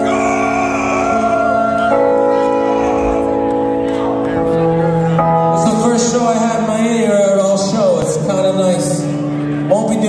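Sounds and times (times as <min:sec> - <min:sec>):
live rock band held chords: 0:00.0 - 0:08.3.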